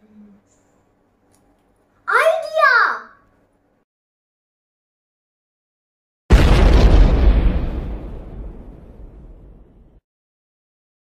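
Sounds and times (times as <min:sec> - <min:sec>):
deep explosion boom: 0:06.3 - 0:10.0.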